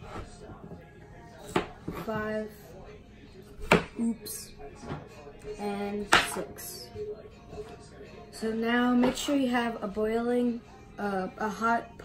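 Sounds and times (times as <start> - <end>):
knife chopping on cutting board: 1.4 - 2.1, 3.6 - 4.1, 6.1 - 6.4.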